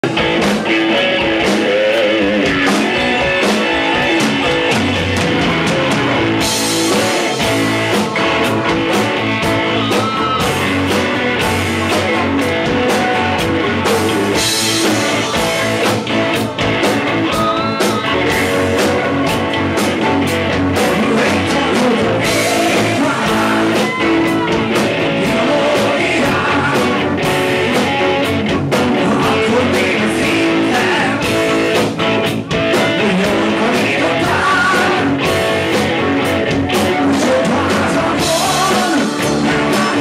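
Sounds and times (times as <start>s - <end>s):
drum and cymbal hits: 0.0s - 20.2s
live rock band: 0.0s - 40.0s.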